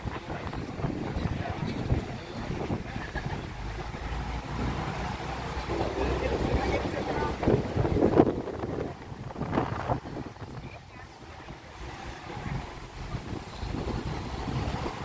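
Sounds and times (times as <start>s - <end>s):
low bus engine rumble: 0.0s - 15.0s
road noise: 0.0s - 15.0s
wind buffeting microphone: 0.0s - 15.0s.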